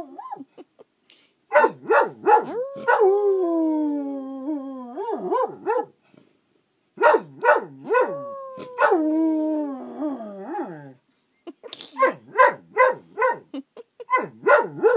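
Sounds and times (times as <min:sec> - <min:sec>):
dog howling: 0:02.2 - 0:05.6, 0:07.8 - 0:11.0.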